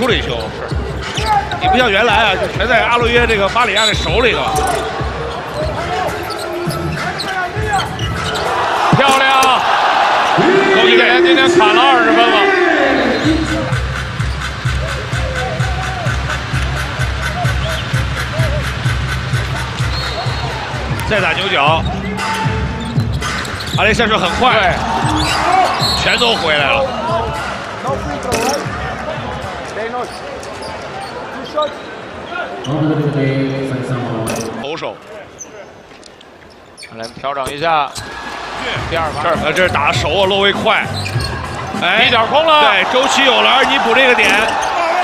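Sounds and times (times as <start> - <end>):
crowd noise: 0.0 - 45.0
shoe squeaks: 3.6 - 9.6, 19.4 - 24.0, 25.0 - 26.6, 28.2 - 28.7, 29.8 - 32.8, 34.3 - 38.2, 40.8 - 42.0, 43.7 - 45.0.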